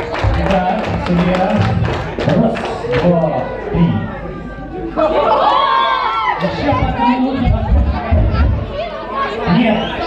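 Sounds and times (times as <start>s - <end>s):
crowd chatter: 0.0s - 10.0s
man talking over pa system: 0.2s - 4.2s.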